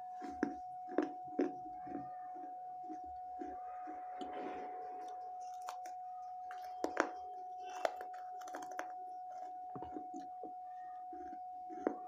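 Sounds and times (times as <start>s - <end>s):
crisp chewing crunches: 0.2s - 2.1s, 5.0s - 10.3s.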